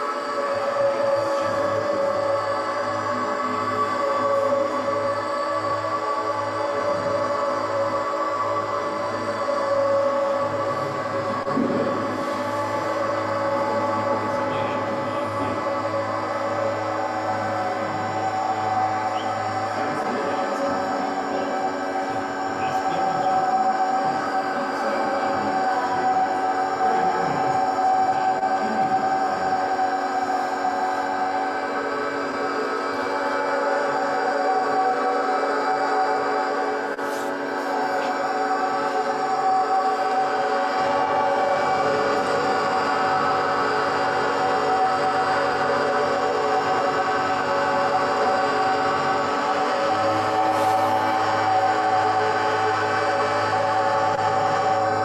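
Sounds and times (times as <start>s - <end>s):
ambient drone music: 0.0s - 55.0s.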